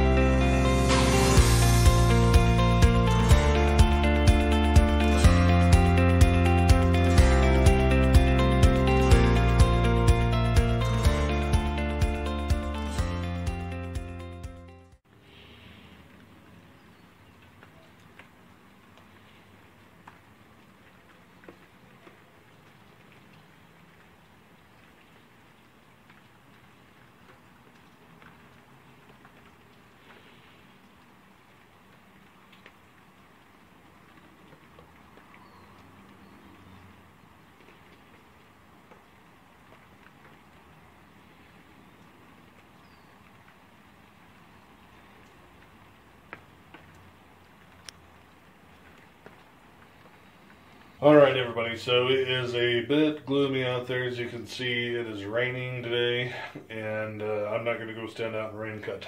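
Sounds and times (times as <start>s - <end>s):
light rain patter: 0.0s - 59.0s
drips ticking: 1.0s - 14.6s, 16.0s - 59.0s.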